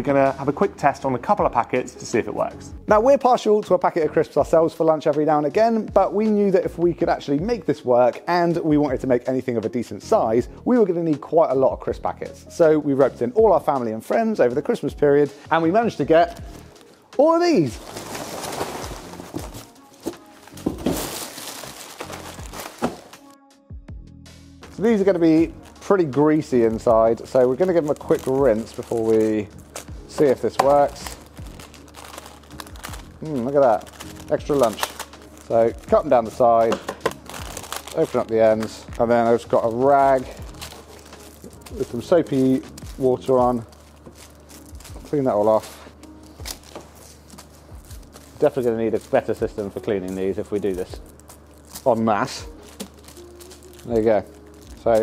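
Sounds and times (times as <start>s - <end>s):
background music: 0.0s - 55.0s
crisp packets crinkling: 16.5s - 23.3s, 24.8s - 55.0s.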